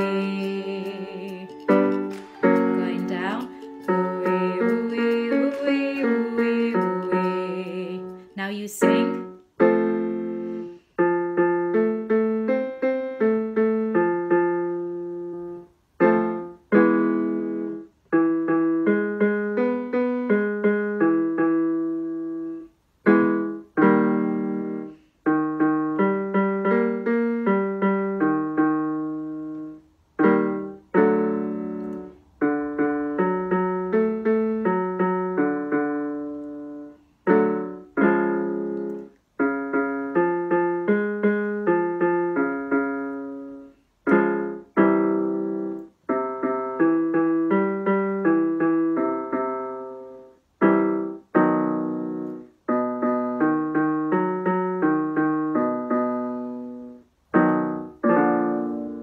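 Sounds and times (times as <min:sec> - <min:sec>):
electric piano chords and notes: 0:00.0 - 0:59.0.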